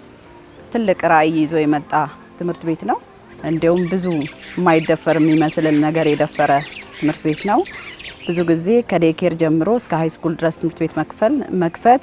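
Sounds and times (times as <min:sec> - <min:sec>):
woman speaking: 0:00.7 - 0:07.7, 0:08.3 - 0:12.0.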